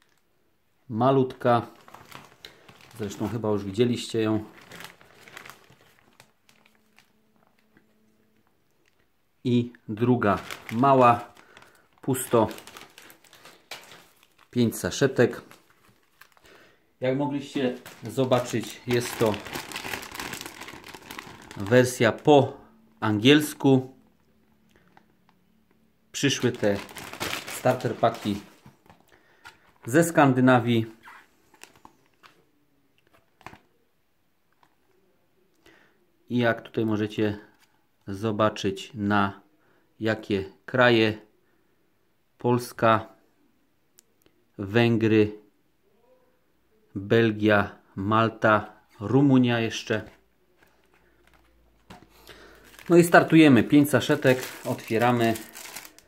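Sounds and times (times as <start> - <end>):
paper rustling: 1.7 - 7.6, 10.2 - 16.5, 17.6 - 22.0, 26.3 - 30.0, 50.0 - 56.0.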